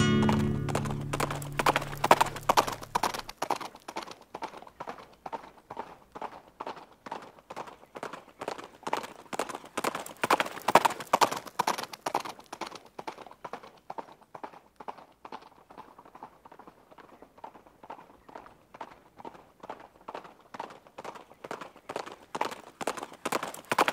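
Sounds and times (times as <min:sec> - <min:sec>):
horse hooves clip-clopping on pavement: 0:00.0 - 0:23.9.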